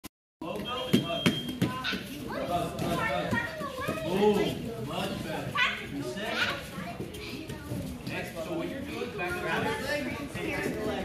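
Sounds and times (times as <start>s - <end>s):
children chattering and calling out: 1.5s - 11.0s.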